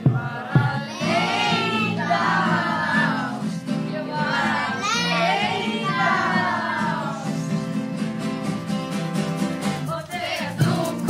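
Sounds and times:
children singing: 0.0s - 7.7s, 9.8s - 11.0s
acoustic guitars strumming: 0.0s - 11.0s.

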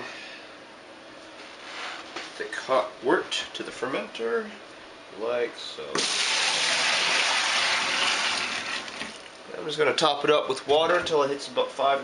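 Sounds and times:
liquid pouring into a bucket: 6.0s - 9.4s.

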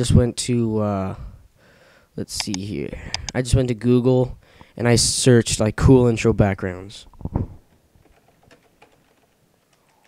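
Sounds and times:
keyboard typing: 8.0s - 10.0s.

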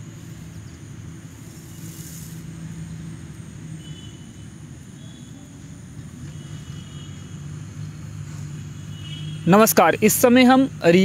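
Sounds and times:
low outdoor rumble: 0.0s - 11.0s
brief hiss: 1.5s - 2.5s.

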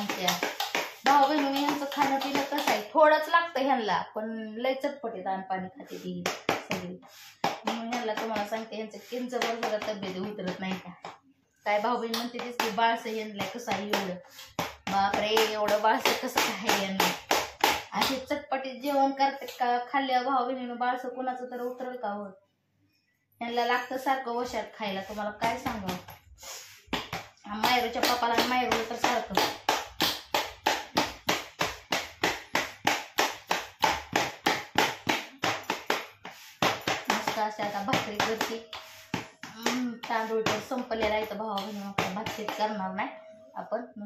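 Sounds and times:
woman speaking: 0.0s - 17.3s, 17.9s - 22.4s, 23.4s - 26.2s, 27.4s - 29.6s, 37.0s - 44.0s
woman talking: 0.0s - 17.3s, 17.9s - 22.4s, 23.4s - 26.2s, 27.4s - 29.6s, 37.0s - 38.8s, 39.4s - 44.0s.

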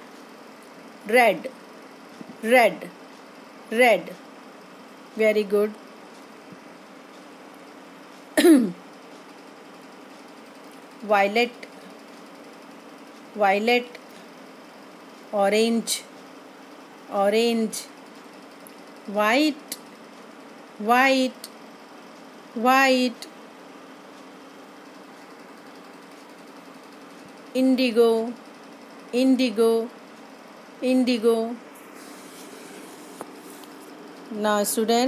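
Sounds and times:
low constant hum: 0.0s - 35.0s
woman coughing: 8.4s - 8.8s.

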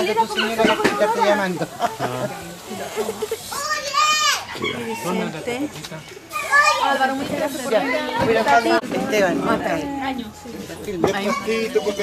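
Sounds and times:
people talking and chattering: 0.0s - 12.0s.

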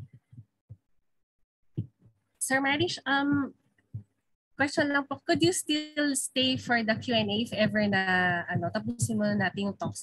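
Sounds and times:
faint low thumps: 2.7s - 10.0s.

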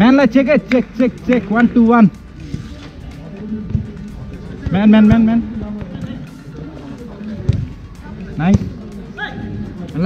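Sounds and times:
outdoor ball game noise: 0.1s - 10.0s.

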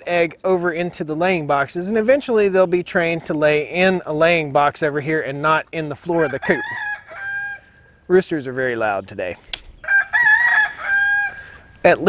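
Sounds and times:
rooster crowing: 6.2s - 7.9s, 9.8s - 11.7s.

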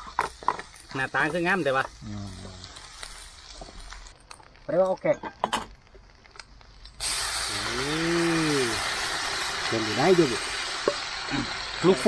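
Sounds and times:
food sizzling in hot oil: 0.0s - 12.0s
man humming: 2.0s - 2.6s.

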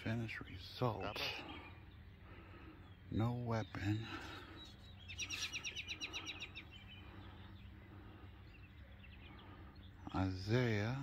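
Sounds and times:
songbird trilling: 0.0s - 11.0s.

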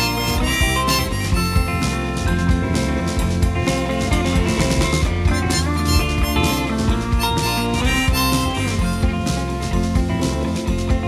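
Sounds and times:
harmonica melody: 0.0s - 10.2s
steady beat: 0.0s - 11.0s
strummed acoustic guitar: 0.0s - 11.0s.

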